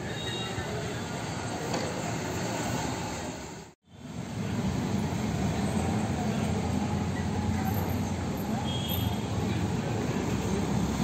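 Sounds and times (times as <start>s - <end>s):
road traffic rumble: 0.0s - 11.0s.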